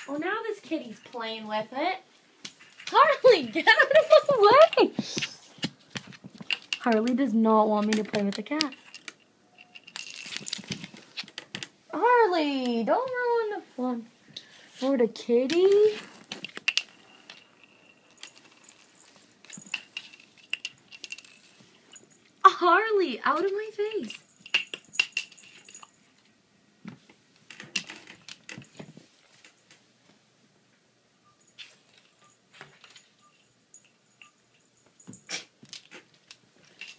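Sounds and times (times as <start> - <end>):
bottle cap clattering on hardwood floor: 24.0 - 25.9.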